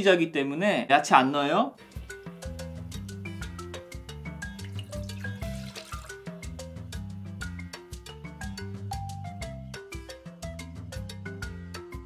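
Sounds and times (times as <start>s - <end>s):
background music with bass line: 1.8s - 12.0s
water pouring into metal saucepan: 4.4s - 6.5s.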